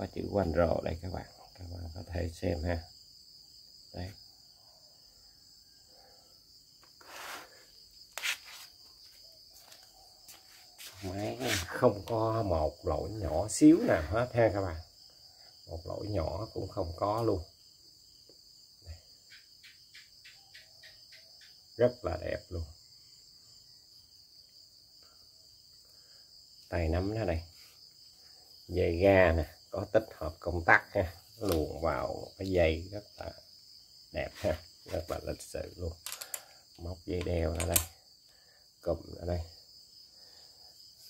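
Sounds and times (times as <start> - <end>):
crickets chirring: 0.0 - 41.0.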